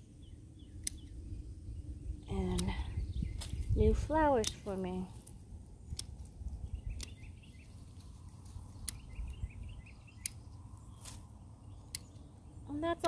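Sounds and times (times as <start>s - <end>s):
pruning shears snipping stems: 0.8s - 1.1s, 2.4s - 9.4s, 10.1s - 12.3s.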